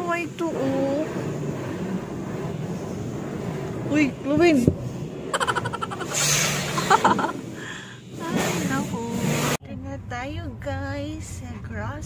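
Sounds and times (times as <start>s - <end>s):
pressure washer spraying water: 4.8s - 9.6s.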